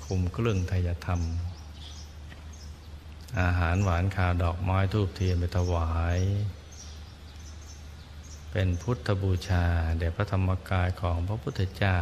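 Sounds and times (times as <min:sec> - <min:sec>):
man speaking slowly: 0:03.2 - 0:06.7, 0:08.5 - 0:12.0.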